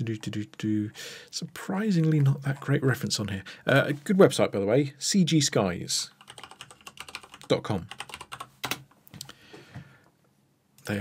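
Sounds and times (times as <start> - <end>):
computer keyboard typing: 6.2 - 8.9.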